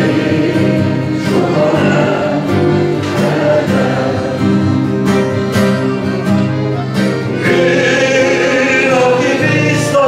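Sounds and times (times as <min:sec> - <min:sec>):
man singing into microphone: 0:07.4 - 0:10.0.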